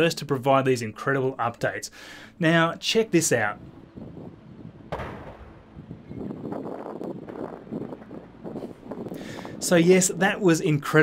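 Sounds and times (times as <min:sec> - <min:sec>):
tank rupturing with sharp bang: 0:04.9 - 0:05.6.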